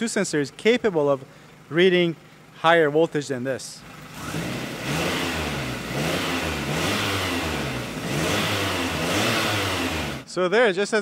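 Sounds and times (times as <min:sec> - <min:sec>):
car engine revving: 0:03.9 - 0:10.3.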